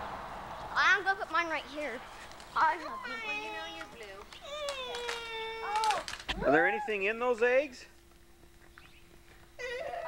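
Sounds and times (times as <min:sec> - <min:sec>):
faint steady hum: 0:00.0 - 0:10.0
child's high-pitched voice: 0:00.8 - 0:02.0, 0:02.6 - 0:06.0.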